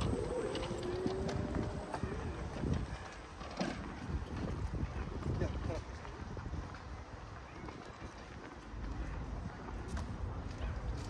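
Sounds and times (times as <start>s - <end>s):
indistinct voices: 0.0s - 3.2s
footsteps on paved path: 0.0s - 11.0s.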